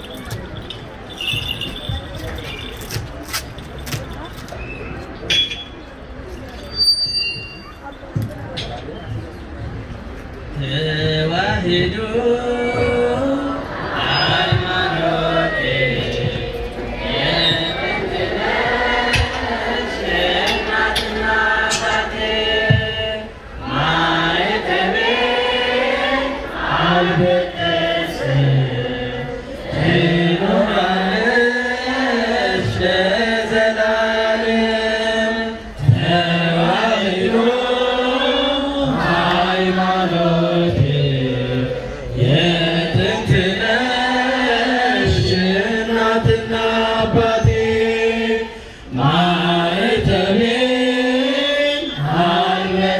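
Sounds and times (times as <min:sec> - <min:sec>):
group singing a hymn in unison: 0:11.0 - 0:52.9.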